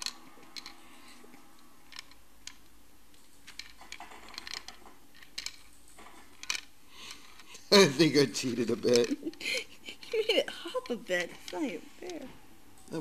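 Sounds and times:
ball rolling in plastic puzzle: 0.0s - 1.2s, 1.8s - 9.4s.

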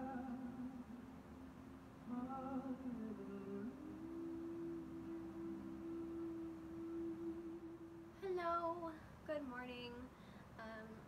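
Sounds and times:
woman humming a steady note: 2.1s - 8.8s.

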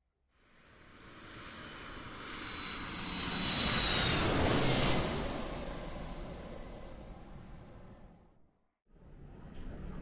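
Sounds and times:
jet aircraft passing: 0.8s - 8.3s.

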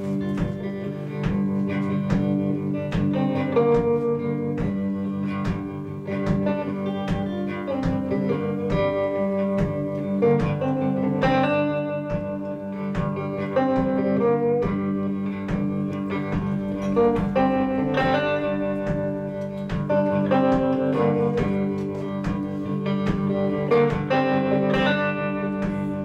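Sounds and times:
electric guitar playing: 0.0s - 26.0s.

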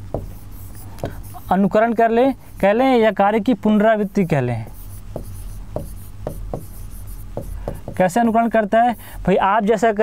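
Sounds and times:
chalk tapping and scratching: 0.0s - 9.4s.

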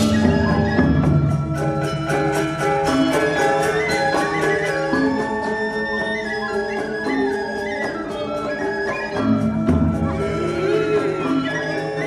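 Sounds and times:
gamelan ensemble playing: 0.0s - 12.0s.

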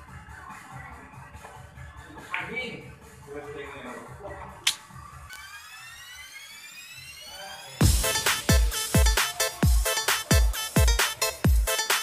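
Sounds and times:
faint music: 0.0s - 12.0s
synthesized riser effect: 5.3s - 9.0s.

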